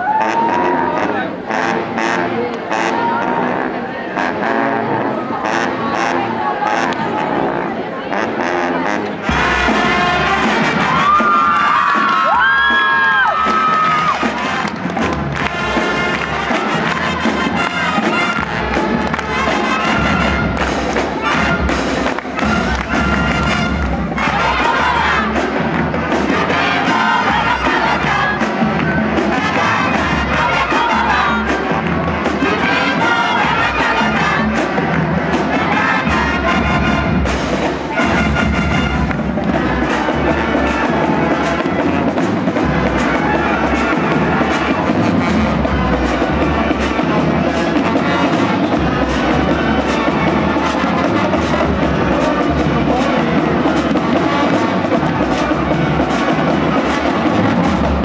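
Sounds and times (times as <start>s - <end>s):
marching band playing: 0.0s - 58.0s
audience cheering: 10.2s - 20.1s.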